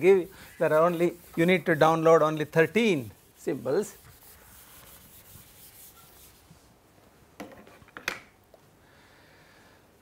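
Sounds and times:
faint rubbing and scraping: 0.0s - 6.8s.

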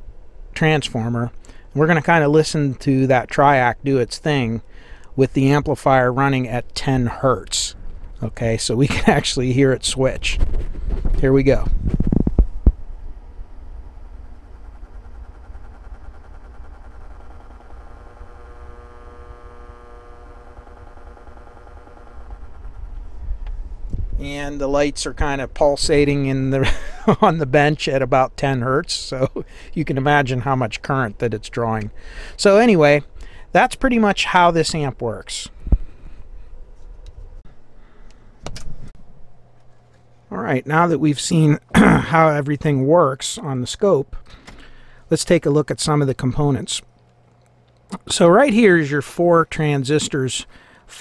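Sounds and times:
low electrical hum: 0.0s - 51.0s
transformer buzzing and pulsing: 10.4s - 26.2s.

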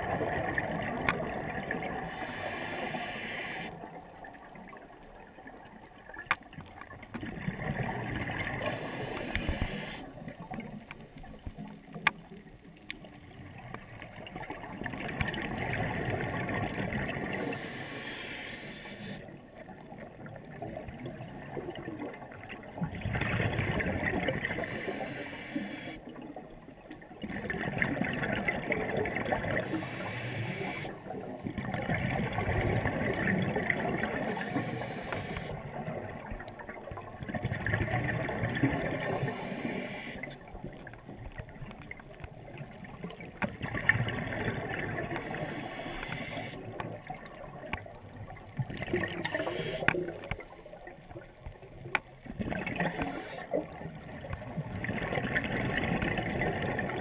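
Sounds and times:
scuba regulator exhaust bubbling: 7.0s - 12.2s, 13.4s - 57.0s
diver breathing through regulator: 8.6s - 10.1s, 17.5s - 19.3s, 29.6s - 30.9s, 45.4s - 46.6s, 49.3s - 50.0s.

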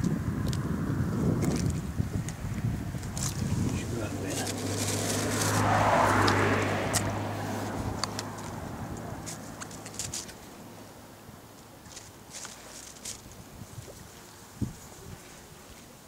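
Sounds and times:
vehicle engine passing by: 2.6s - 11.1s.

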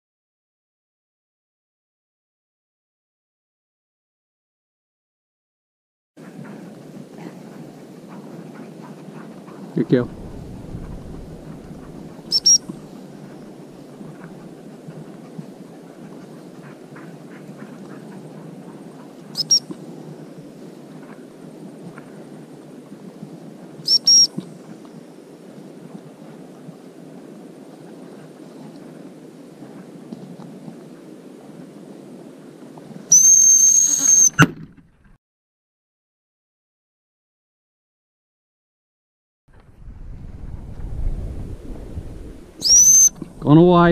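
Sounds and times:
high whistle pips: 12.3s - 12.7s, 19.4s - 19.7s, 23.8s - 24.4s, 33.1s - 34.5s, 42.6s - 43.2s.

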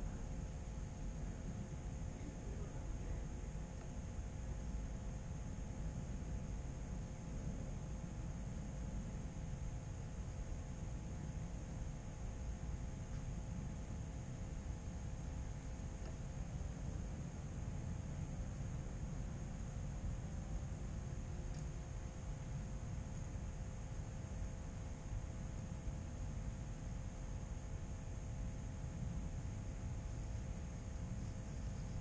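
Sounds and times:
faint steady hums: 0.0s - 32.0s
low rumble and hiss: 0.0s - 32.0s.

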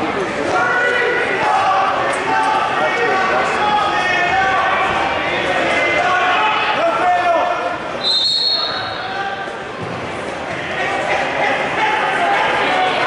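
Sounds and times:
people calling out in a gym: 0.4s - 9.6s
referee whistle blast: 8.0s - 9.1s.

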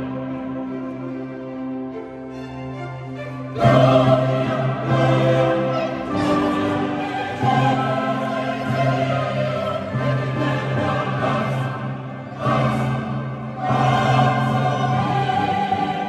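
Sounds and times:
choir and orchestra sacred music: 0.0s - 16.0s.

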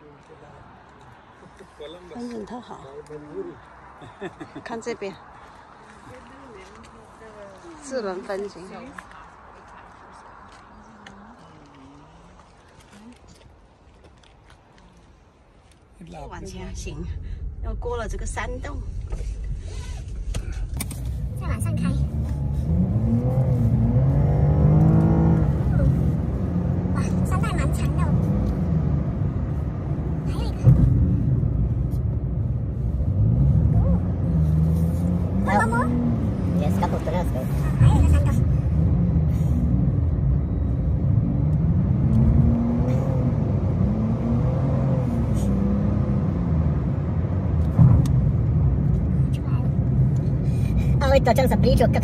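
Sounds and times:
car driving drone from inside: 16.4s - 52.0s.

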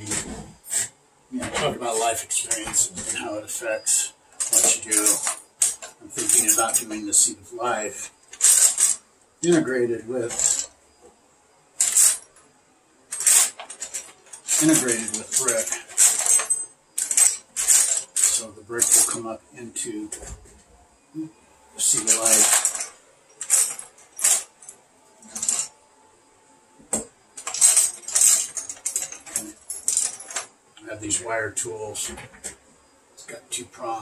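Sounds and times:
metal tools rattling: 0.0s - 11.0s, 11.8s - 12.4s, 13.1s - 19.3s, 21.8s - 25.8s, 27.0s - 31.4s.

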